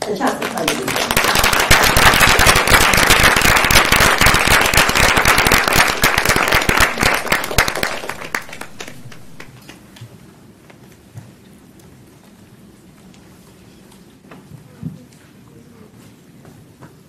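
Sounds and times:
audience applauding: 0.0s - 9.5s.

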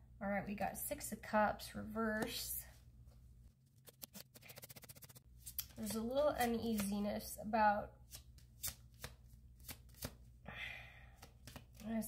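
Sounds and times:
cards being shuffled: 3.6s - 7.1s, 8.1s - 10.3s, 11.2s - 11.8s.

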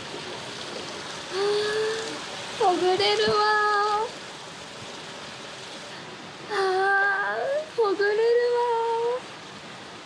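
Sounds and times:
water flowing: 0.0s - 10.0s
woman sighing aah: 1.3s - 2.2s, 6.5s - 7.1s.

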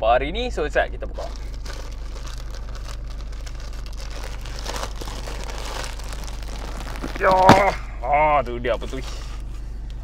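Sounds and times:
steady low hum: 0.0s - 10.0s
plastic bag crinkling and tearing: 1.2s - 7.8s.

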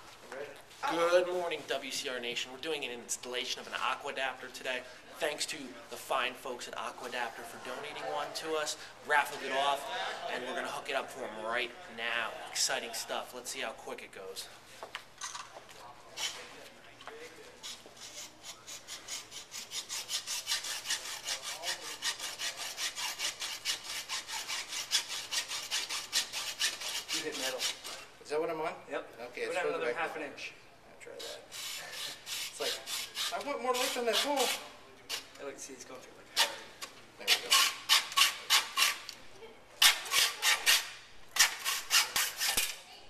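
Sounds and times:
hand tool rasping: 17.6s - 28.0s, 31.2s - 35.3s, 37.2s - 39.1s, 39.8s - 42.8s
hose scraping through metal fitting: 31.2s - 35.3s, 37.3s - 39.1s.

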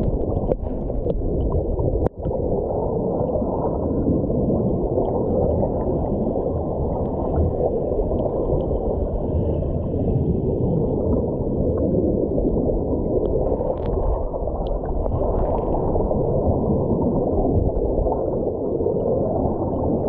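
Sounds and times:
underwater gurgling water: 0.0s - 20.0s.

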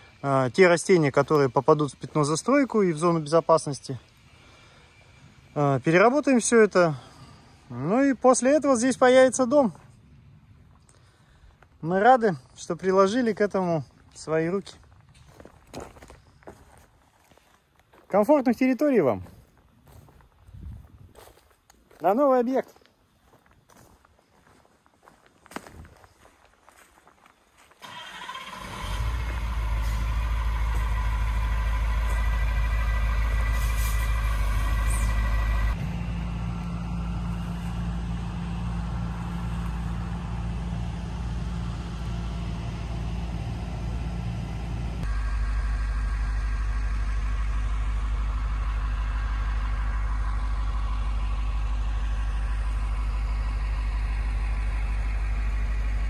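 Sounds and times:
heavy machine engine drone: 0.0s - 14.6s, 28.5s - 56.0s.

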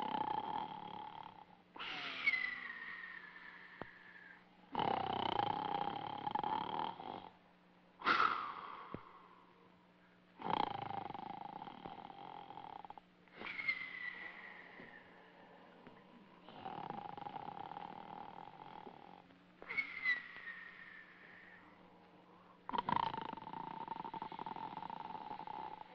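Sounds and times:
comic snoring: 0.0s - 3.7s, 4.7s - 7.4s, 10.4s - 13.6s, 16.4s - 19.3s, 22.7s - 25.9s.

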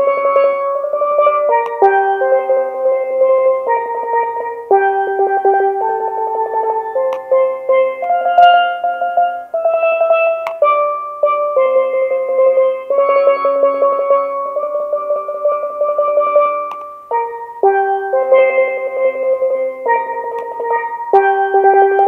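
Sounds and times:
steelpan melody: 0.0s - 22.0s.

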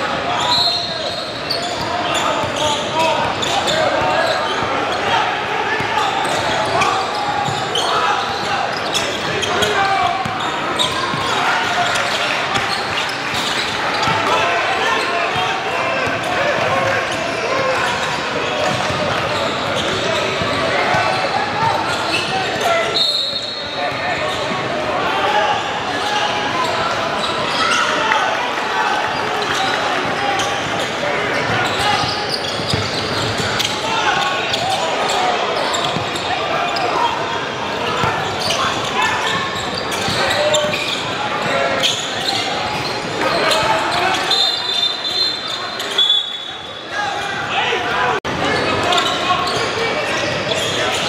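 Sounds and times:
voices echoing in hall: 0.0s - 51.0s
whistle blast: 23.0s - 23.7s, 44.3s - 46.7s.

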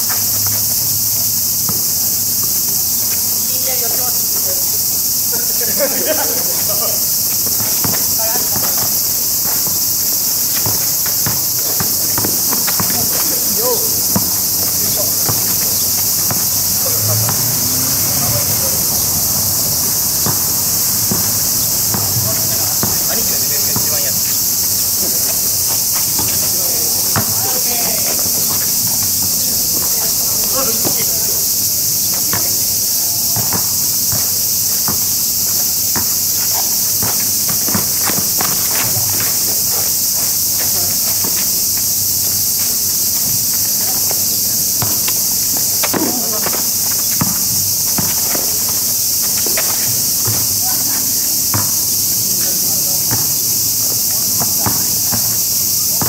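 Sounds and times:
basketball bouncing on asphalt: 0.0s - 56.0s
insects chorus: 0.0s - 56.0s
players' footsteps: 0.0s - 56.0s
faint voices: 11.6s - 31.5s.

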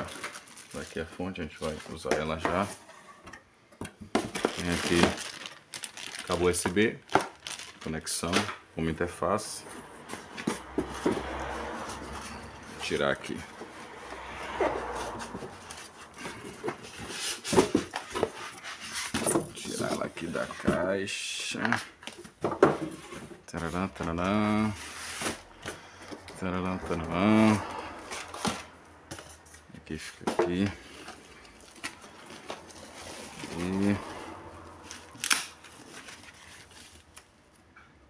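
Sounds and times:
plastic bag crinkles: 0.0s - 1.2s, 4.3s - 8.4s
plastic bag rustling: 0.0s - 2.7s, 4.2s - 8.5s, 30.5s - 37.3s
cardboard and foam scraping: 4.3s - 6.6s, 9.7s - 21.0s, 22.8s - 25.5s, 30.5s - 37.1s.

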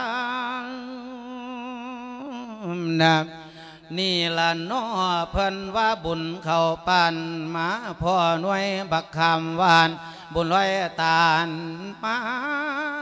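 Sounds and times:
man chanting into a microphone: 0.0s - 13.0s
breaths between phrases: 3.4s - 3.9s, 10.0s - 10.3s.

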